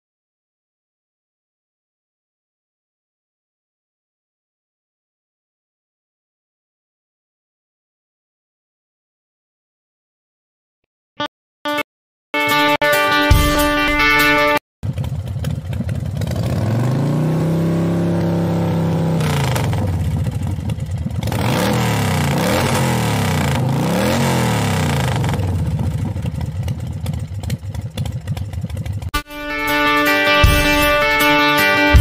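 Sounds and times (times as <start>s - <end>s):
guitar music: 12.4s - 14.6s, 29.2s - 32.0s
engine revving: 14.5s - 29.2s.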